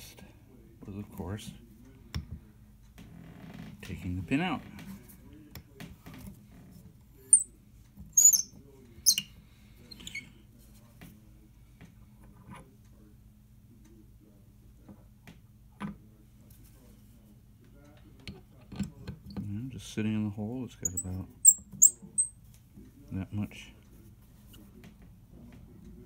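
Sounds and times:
tuning pin squeaking: 0:07.3 - 0:07.5, 0:08.1 - 0:09.3, 0:09.9 - 0:10.4, 0:20.8 - 0:22.4.

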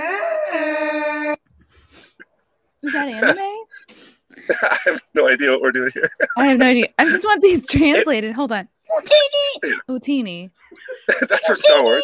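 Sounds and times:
loud wailing cry: 0:00.0 - 0:01.5.

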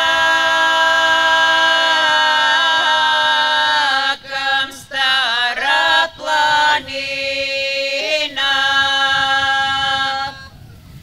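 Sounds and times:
low sustained vocal drone: 0:00.0 - 0:10.4
women singing a cappella chord: 0:00.0 - 0:10.6.

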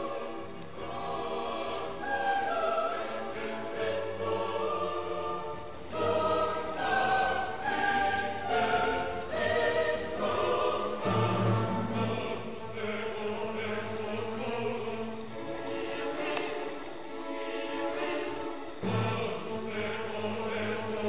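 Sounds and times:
choir singing held notes: 0:00.0 - 0:21.0.

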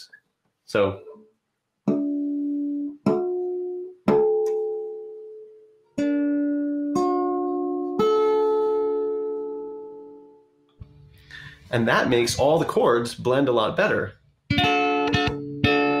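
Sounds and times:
guitar strumming chords: 0:01.8 - 0:16.0.

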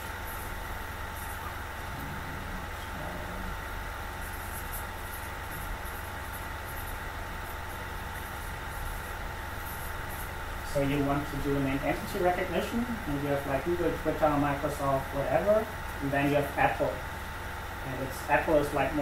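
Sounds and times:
thin constant hum: 0:00.0 - 0:19.0.

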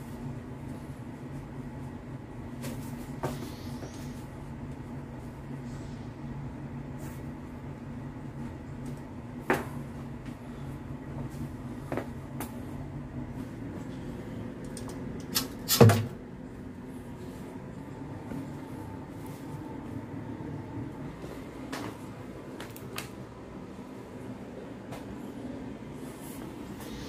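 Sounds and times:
low room hum: 0:00.0 - 0:27.0.

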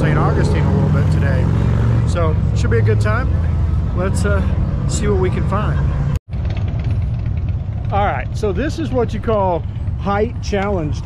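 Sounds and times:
vehicle engines idling: 0:00.0 - 0:11.0.

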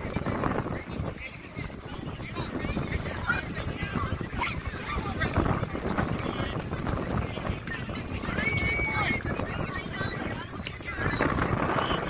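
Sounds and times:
crowd voices talking and calling: 0:00.0 - 0:12.0
wind buffeting microphone: 0:00.0 - 0:12.0.

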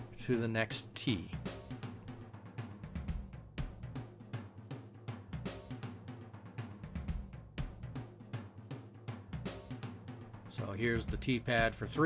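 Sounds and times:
drum-kit beat: 0:00.0 - 0:12.0.

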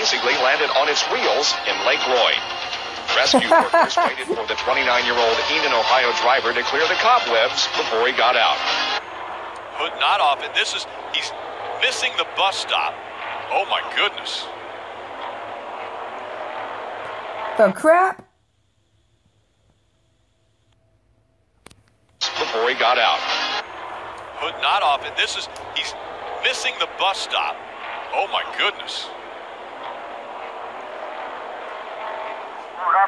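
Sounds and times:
race track rushing noise: 0:04.3 - 0:17.6, 0:22.2 - 0:33.0.

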